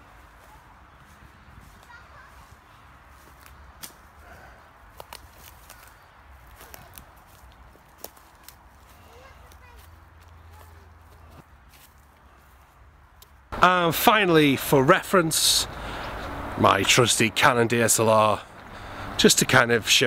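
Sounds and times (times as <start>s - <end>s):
footsteps on leaf litter: 0.0s - 4.1s, 4.9s - 12.8s
twigs and dry leaves crackling: 0.2s - 4.2s, 4.8s - 13.5s
low steady rumble: 13.6s - 20.0s.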